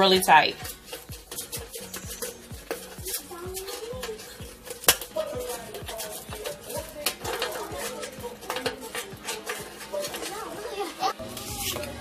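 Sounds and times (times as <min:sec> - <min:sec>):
metal bucket clinking against wire: 0:00.0 - 0:11.9
background music: 0:00.0 - 0:12.0.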